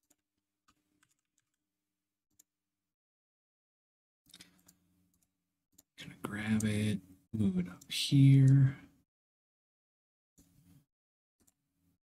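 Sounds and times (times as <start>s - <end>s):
keyboard and mouse clicks: 0.0s - 1.6s, 4.3s - 5.9s, 11.4s - 11.6s.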